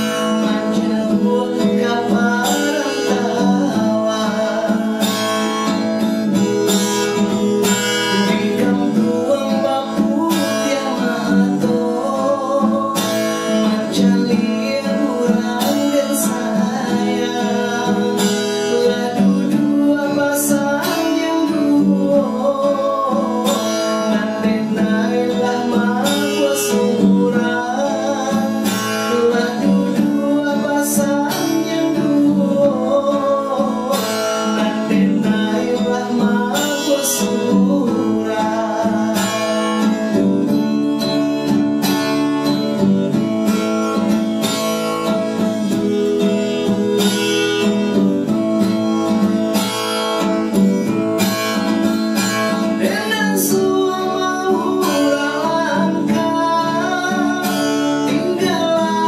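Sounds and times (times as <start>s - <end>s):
acoustic guitar strumming: 0.0s - 59.0s
man singing: 0.0s - 59.0s.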